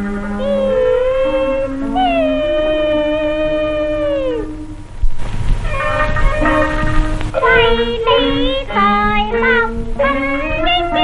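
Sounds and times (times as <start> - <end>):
high voice singing opera: 0.0 - 4.8, 5.6 - 11.0
instrumental accompaniment: 0.0 - 11.0.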